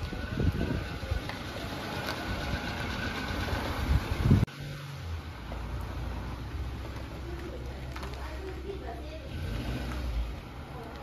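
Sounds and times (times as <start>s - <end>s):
small truck engine idling: 0.0s - 4.4s.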